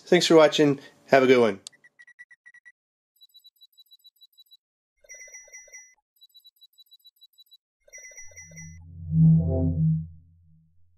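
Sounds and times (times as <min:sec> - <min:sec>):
synthesized alarm-like beeping: 0:08.3 - 0:10.7
pulsed tones: 0:08.3 - 0:10.9.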